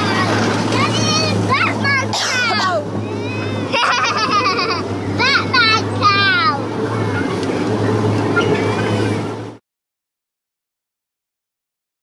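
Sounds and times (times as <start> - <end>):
small train engine humming: 0.0 - 9.6.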